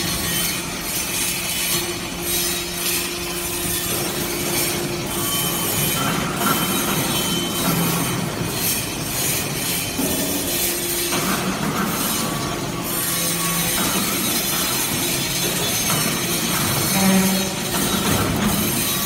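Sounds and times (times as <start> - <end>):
loud mechanical noise: 0.0 - 19.0.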